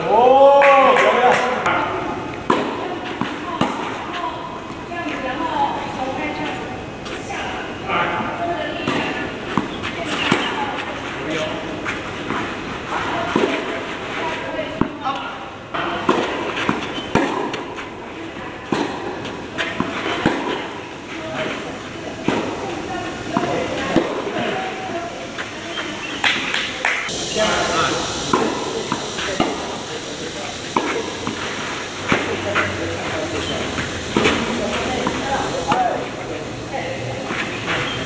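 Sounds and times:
tennis balls struck by rackets: 0.6 - 7.2, 7.8 - 24.8, 28.3 - 29.8, 30.6 - 38.0.

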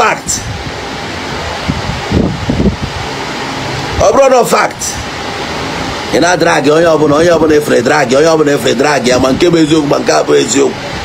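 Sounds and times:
man speaking: 0.0 - 0.6, 4.0 - 5.1, 6.1 - 10.9
steady background noise: 0.0 - 11.0.

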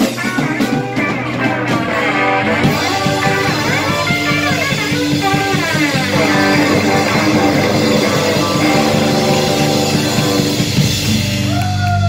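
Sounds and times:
drum kit: 0.0 - 12.0
electric bass: 0.0 - 12.0
electric guitars: 0.0 - 12.0.

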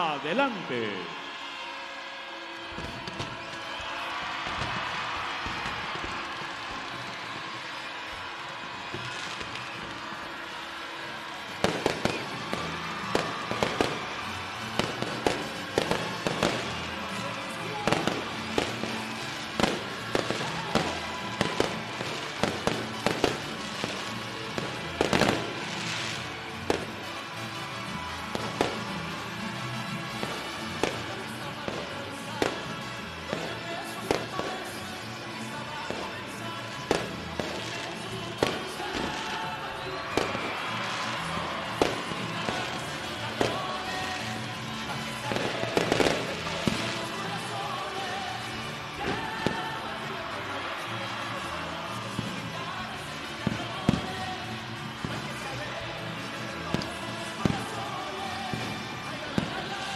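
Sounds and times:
background music: 0.0 - 59.9
fireworks bangs and crackles: 0.0 - 59.9.

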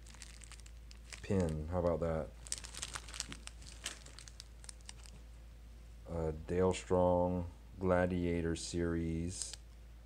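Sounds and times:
plastic wrapper crinkling: 0.0 - 5.2.

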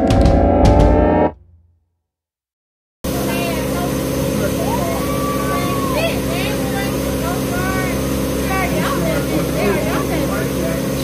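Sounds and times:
motorboat engine droning: 3.0 - 11.0
people talking: 3.1 - 11.0.

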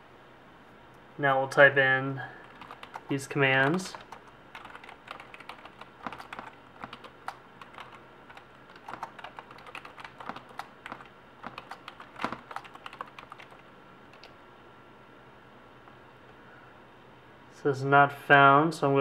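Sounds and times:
typing on computer keyboard: 2.4 - 14.4.

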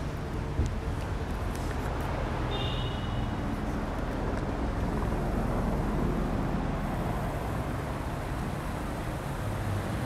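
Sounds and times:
distant city traffic rumble: 0.0 - 10.0.

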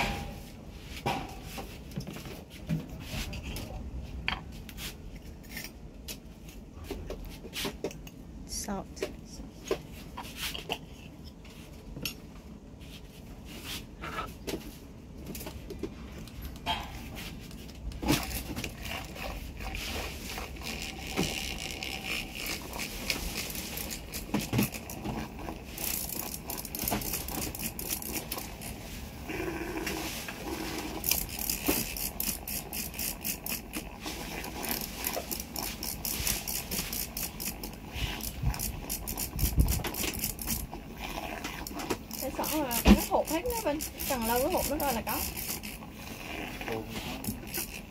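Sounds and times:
milk frother rattling in glass: 18.1 - 29.0, 30.4 - 47.9.

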